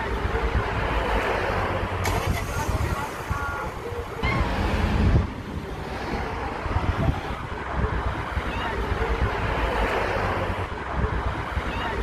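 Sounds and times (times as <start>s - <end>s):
wind buffeting microphone: 2.0s - 9.5s.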